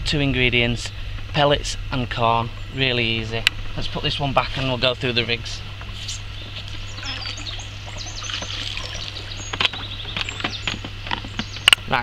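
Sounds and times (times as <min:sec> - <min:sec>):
steady low hum: 0:00.0 - 0:12.0
small birds chirping: 0:02.1 - 0:12.0.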